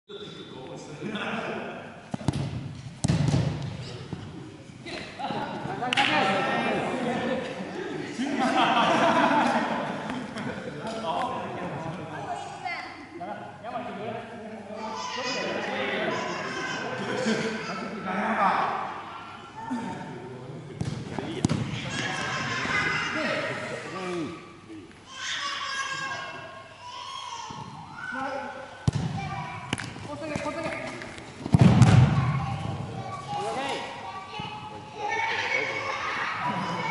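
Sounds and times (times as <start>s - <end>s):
players' voices: 0.1s - 27.0s
ball kicked thud: 2.2s - 3.8s, 20.8s - 21.8s, 28.8s - 29.2s, 31.4s - 32.2s
ball striking bang: 28.8s - 29.9s, 31.4s - 32.2s.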